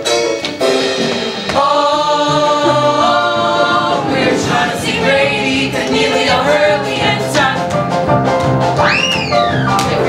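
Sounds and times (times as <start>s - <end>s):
young voices singing in harmony: 1.2s - 8.0s.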